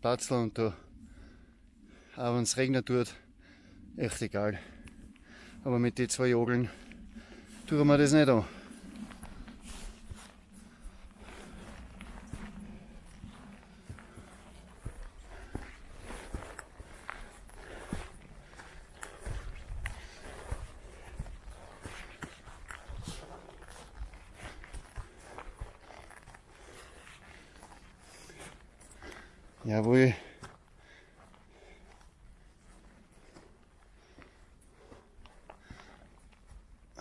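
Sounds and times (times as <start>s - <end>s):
low rumble: 4.6s - 28.9s
footsteps on grassy stony slope: 4.6s - 37.0s.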